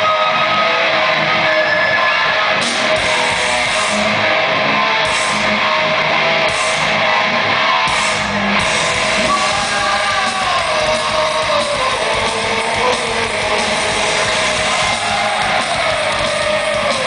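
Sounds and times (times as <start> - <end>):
distorted electric guitars: 0.0 - 17.0
metal band playing live: 0.0 - 17.0.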